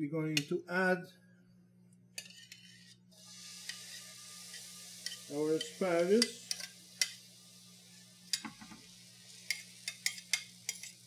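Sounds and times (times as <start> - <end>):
food sizzling in hot oil: 2.2 - 11.0.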